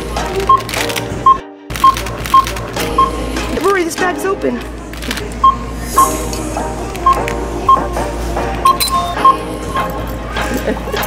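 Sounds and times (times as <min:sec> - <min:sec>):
background music: 0:00.0 - 0:11.0
barcode scanner beeping: 0:00.4 - 0:03.2, 0:05.4 - 0:06.2, 0:07.0 - 0:07.9, 0:08.6 - 0:09.4.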